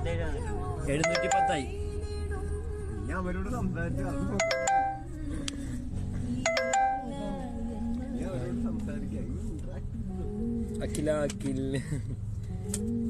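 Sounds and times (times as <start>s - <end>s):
background music: 0.0s - 13.0s
bell-like chime: 4.4s - 5.0s, 6.5s - 7.1s.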